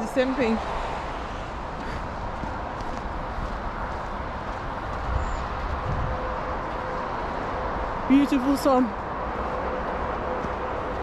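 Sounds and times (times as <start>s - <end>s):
distant traffic: 0.0s - 11.0s
footsteps on packed snow: 0.1s - 11.0s.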